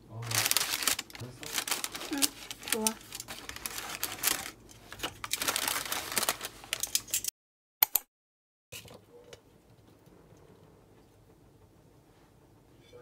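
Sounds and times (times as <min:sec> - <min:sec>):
paper liner crinkling: 0:00.2 - 0:07.3.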